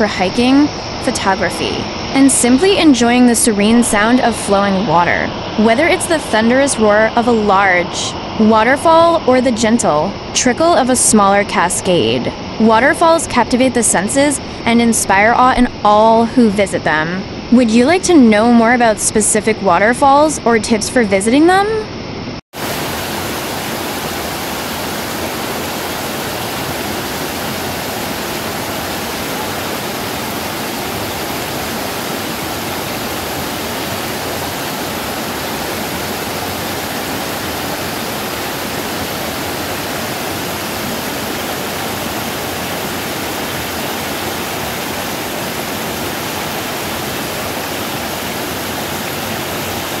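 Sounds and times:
waterfall rushing: 0:22.6 - 0:50.0.

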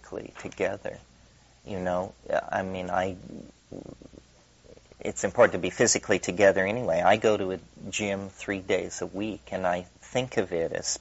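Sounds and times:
man lecturing: 0:00.0 - 0:01.0, 0:01.7 - 0:04.2, 0:04.8 - 0:11.0
faint low sounds: 0:00.0 - 0:11.0.

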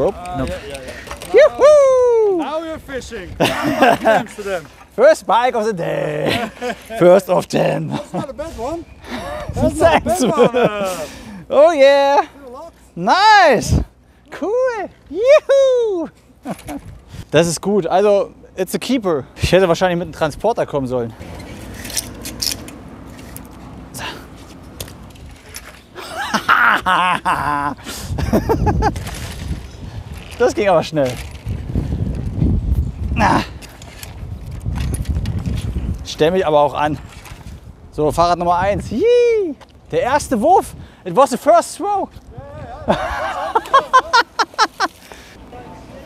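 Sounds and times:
person shouting with joy: 0:01.3 - 0:02.6, 0:15.1 - 0:16.1, 0:39.0 - 0:39.6
bicycle clicks and rattles: 0:21.2 - 0:26.0, 0:28.5 - 0:32.4, 0:33.5 - 0:36.0.

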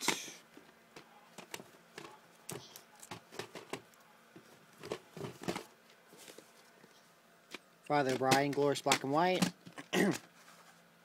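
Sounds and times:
plastic cassettes being handled: 0:00.6 - 0:06.6, 0:07.5 - 0:10.4.

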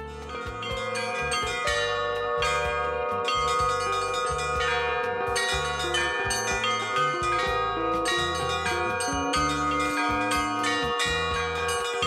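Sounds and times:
deep bell tolling: 0:00.0 - 0:12.0
small high bells pealing: 0:00.0 - 0:12.0.

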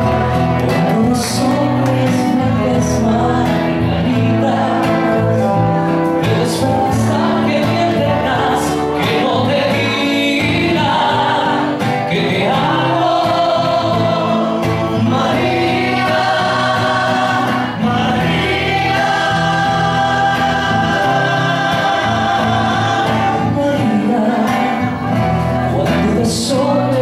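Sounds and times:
live musical backing: 0:00.0 - 0:27.0
two men singing: 0:00.0 - 0:27.0.

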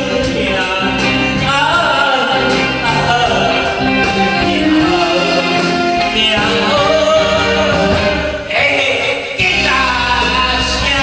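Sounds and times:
band accompaniment: 0:00.0 - 0:11.0
man singing into microphone: 0:00.0 - 0:11.0
steady drum beat: 0:00.0 - 0:11.0.

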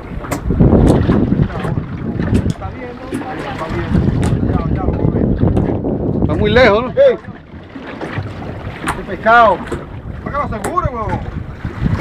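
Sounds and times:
water noise: 0:00.0 - 0:12.0
wind buffeting microphone: 0:00.0 - 0:12.0.

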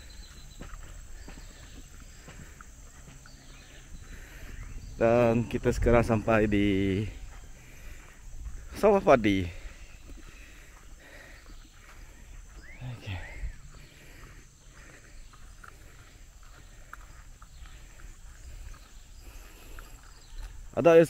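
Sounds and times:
faint ticks and rustles: 0:00.0 - 0:21.0
high-pitched insect chorus: 0:00.0 - 0:21.0.

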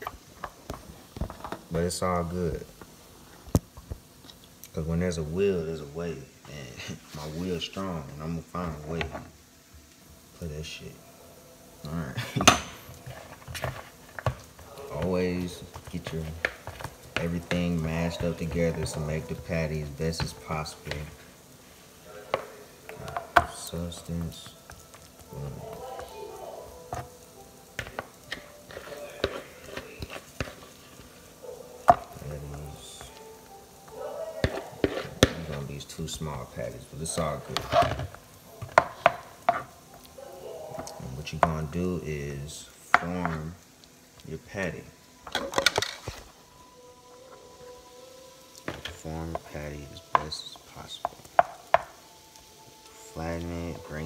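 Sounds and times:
faint steady hum: 0:00.0 - 0:54.0
kitchen knocks and clatters: 0:12.4 - 0:19.3.

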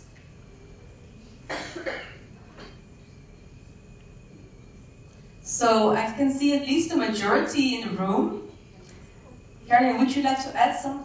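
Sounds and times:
person coughing: 0:01.5 - 0:02.8.

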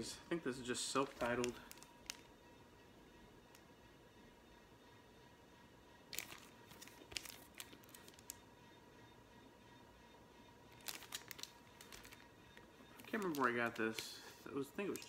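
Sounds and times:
plastic sleeve crinkling: 0:01.0 - 0:02.3, 0:06.1 - 0:08.4, 0:10.8 - 0:12.3, 0:13.0 - 0:15.0.

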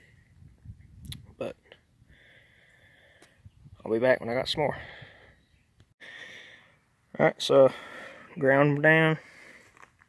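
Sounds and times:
man talking: 0:03.8 - 0:04.9, 0:07.2 - 0:09.2.

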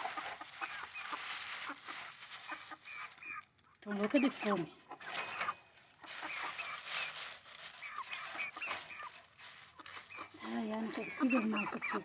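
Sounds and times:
plastic sheet rustling: 0:00.0 - 0:11.4
hens chirping clucks: 0:00.0 - 0:12.0.

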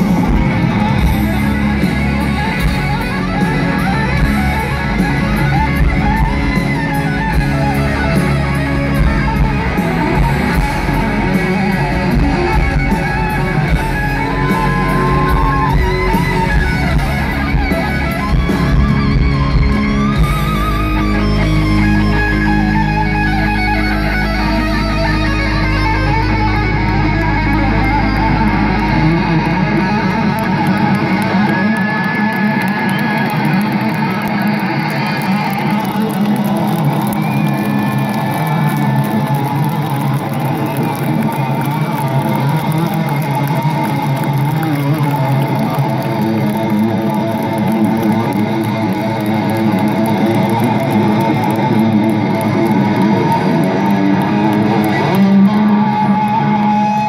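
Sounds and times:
electric guitar solo: 0:00.0 - 0:57.0.

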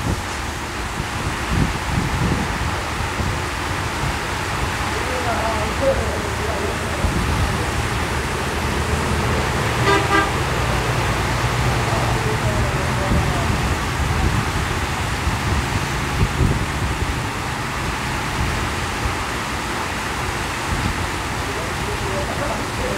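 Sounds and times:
heavy rain pouring: 0:00.0 - 0:22.9
motorcycles passing: 0:00.0 - 0:22.9
traffic on wet road: 0:00.0 - 0:22.9
truck passing: 0:00.0 - 0:22.9
vehicle horn toot: 0:09.8 - 0:10.5.

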